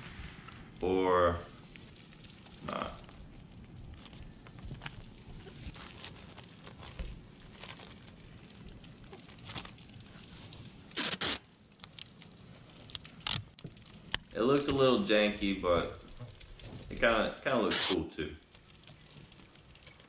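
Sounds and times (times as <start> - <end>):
tape crackling and rustling: 0.0 - 20.0
tape tearing rips: 10.9 - 12.2, 12.8 - 14.8, 17.6 - 18.1.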